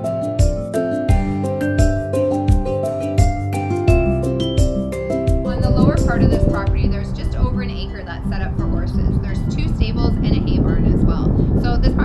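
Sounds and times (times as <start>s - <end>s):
faint background music: 2.8s - 12.0s
wind buffeting microphone: 5.4s - 12.0s
woman talking: 5.4s - 12.0s.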